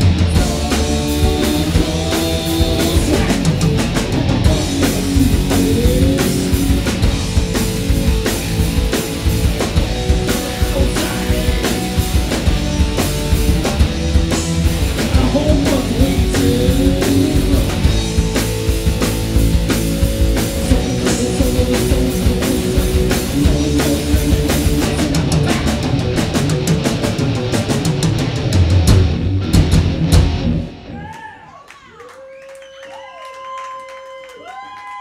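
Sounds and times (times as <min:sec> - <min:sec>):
live rock band playing: 0:00.0 - 0:31.1
audience whooping and whistling: 0:30.9 - 0:35.0.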